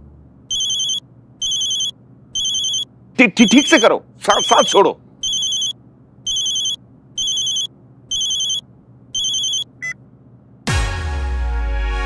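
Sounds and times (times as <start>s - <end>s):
phone ringtone beeps: 0.5s - 8.6s, 9.2s - 10.0s.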